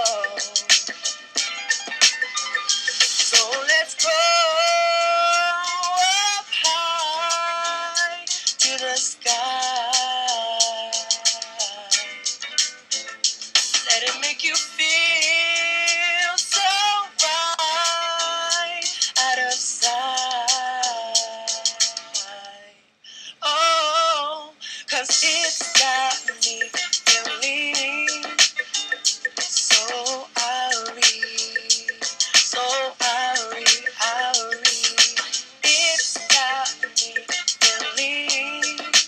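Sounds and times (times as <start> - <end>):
recorded backing beat: 0.0 - 22.6, 24.8 - 39.0
man singing into microphone: 3.3 - 11.9, 23.4 - 28.3, 32.4 - 38.9.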